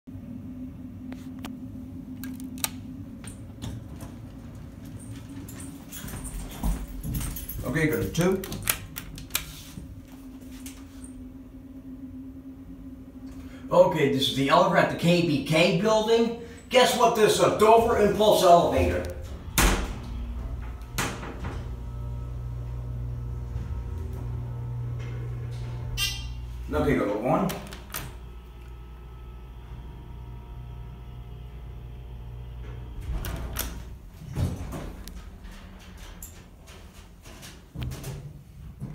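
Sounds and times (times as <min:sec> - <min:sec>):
steady low hum: 0:00.1 - 0:38.9
elevator arrival ringing tone: 0:01.7 - 0:08.6, 0:09.9 - 0:34.1
elevator button press: 0:02.1 - 0:03.7.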